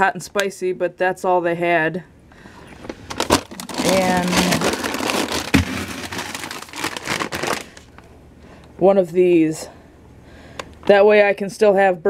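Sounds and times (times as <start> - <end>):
plastic bag and packaging rustling: 2.6 - 8.1.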